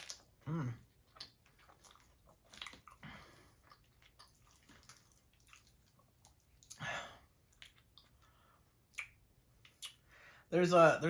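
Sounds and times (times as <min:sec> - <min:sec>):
faint close-up chewing: 0:00.0 - 0:06.8, 0:07.4 - 0:10.0
mouth clicks and wet sounds: 0:00.0 - 0:10.2.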